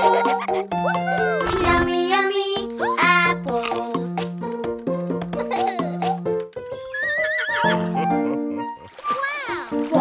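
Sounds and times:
children's song backing track: 0.0 - 6.5, 9.2 - 10.0
horse whinnying: 6.9 - 8.0.

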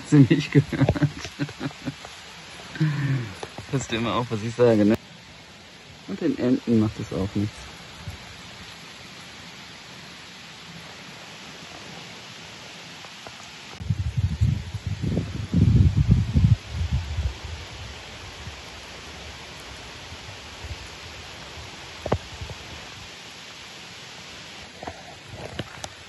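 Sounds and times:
heavy rain falling on pond: 0.0 - 26.0.

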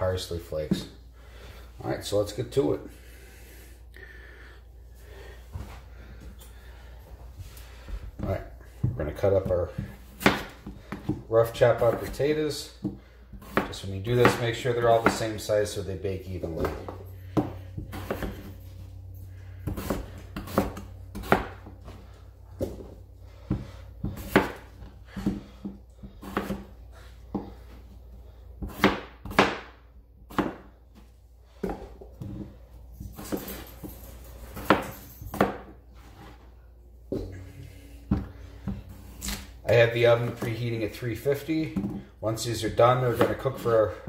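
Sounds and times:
knife chopping on plastic board: 12.8 - 15.3, 28.6 - 29.7.

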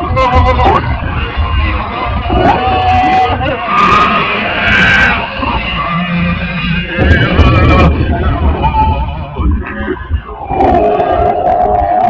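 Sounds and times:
harsh growled singing: 0.0 - 12.0
heavy metal band playing: 0.0 - 12.0.

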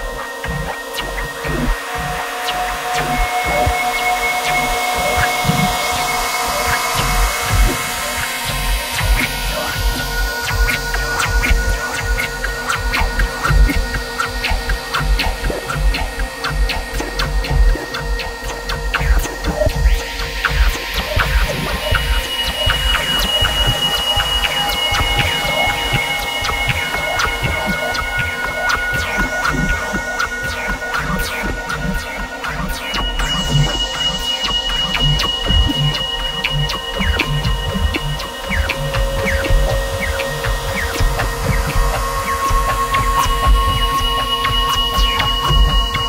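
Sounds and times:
low throbbing bass pulse: 34.8 - 46.0.

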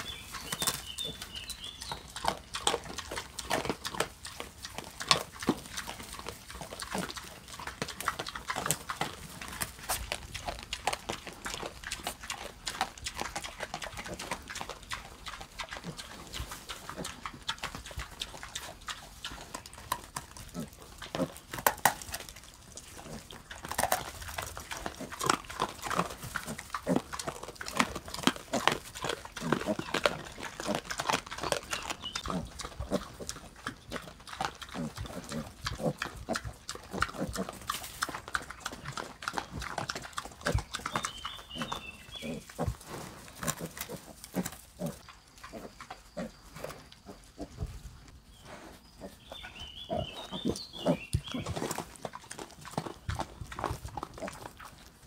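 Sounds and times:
pigs chewing and crunching: 0.0 - 55.0
pigs grunting: 0.0 - 55.0.

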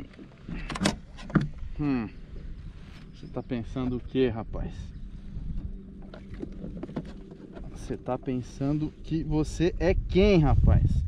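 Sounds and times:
wind rumble on microphone: 1.4 - 11.0
man speaking: 7.7 - 10.9.

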